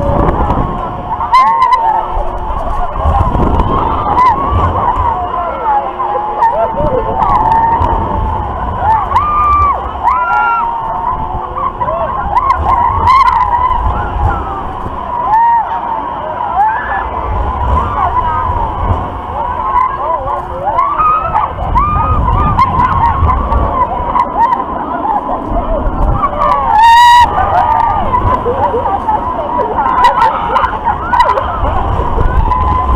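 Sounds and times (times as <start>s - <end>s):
riders screaming and whooping: 0.0s - 32.9s
wind buffeting microphone: 0.0s - 32.9s.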